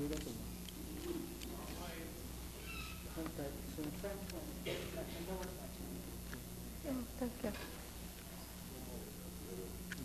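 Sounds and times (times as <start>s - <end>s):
low electrical hum: 0.0s - 10.0s
quiet talking: 0.0s - 10.0s.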